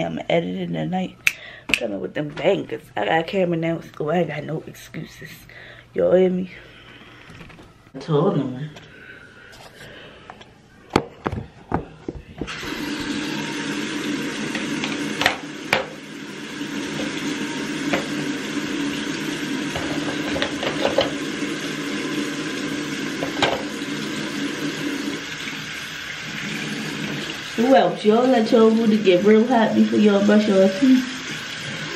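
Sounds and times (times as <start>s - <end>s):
tap water running into sink: 12.4s - 31.9s.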